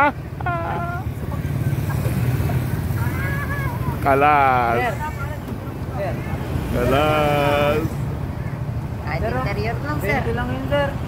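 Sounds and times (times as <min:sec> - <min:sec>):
motor vehicle low rumble: 0:00.0 - 0:11.0
faint voices: 0:00.3 - 0:11.0.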